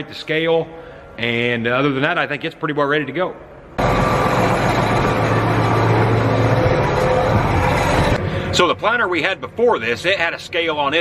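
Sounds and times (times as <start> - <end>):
tractor engine humming: 3.8 - 9.7.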